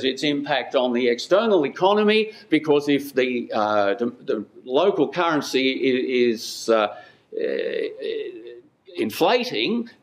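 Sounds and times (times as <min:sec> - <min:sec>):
man saying uh: 0:03.0 - 0:09.9.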